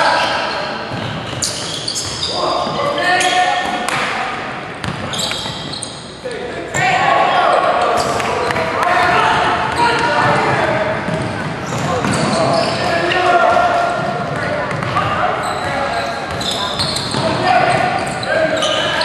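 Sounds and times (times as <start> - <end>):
sneakers squeaking: 0.0 - 4.2, 4.8 - 19.0
shouts and chatter in a gym: 0.0 - 19.0.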